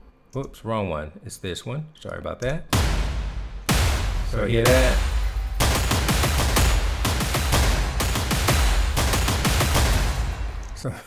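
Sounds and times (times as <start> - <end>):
aggressive booming drum hits: 2.7 - 10.4.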